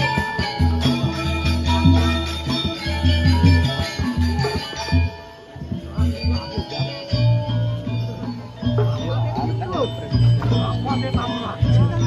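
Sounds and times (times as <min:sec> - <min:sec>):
gamelan playing: 0:00.0 - 0:12.0.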